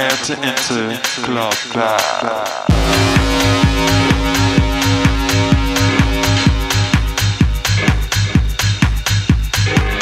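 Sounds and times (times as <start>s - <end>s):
wavering vocal-like synth line: 2.6s - 7.8s.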